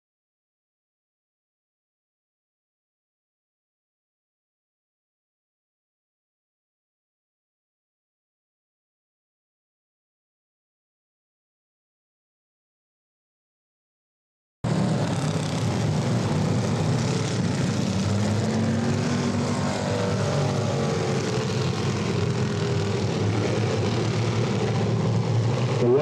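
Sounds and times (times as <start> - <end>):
stock car engines droning: 14.7 - 26.0.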